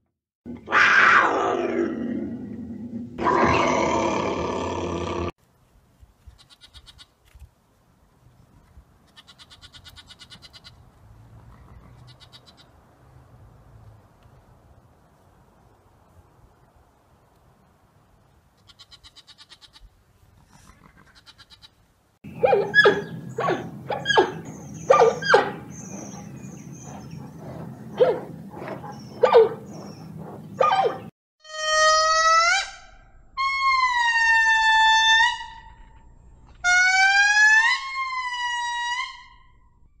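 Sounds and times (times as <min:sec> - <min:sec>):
long rising animal calls: 0:00.5 - 0:05.4, 0:22.6 - 0:31.1.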